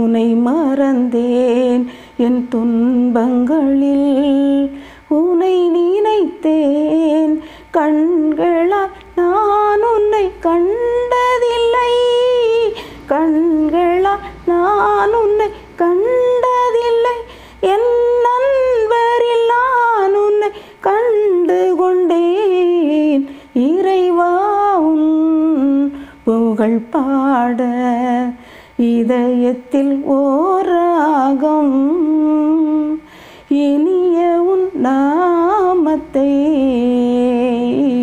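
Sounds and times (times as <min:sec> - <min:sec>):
woman singing unaccompanied: 0:00.0 - 0:38.0
singer breathing: 0:01.8 - 0:02.2, 0:04.7 - 0:05.1, 0:07.4 - 0:07.7, 0:12.7 - 0:13.1, 0:17.2 - 0:17.6, 0:20.5 - 0:20.8, 0:23.2 - 0:23.6, 0:25.9 - 0:26.3, 0:28.4 - 0:28.8, 0:33.0 - 0:33.5.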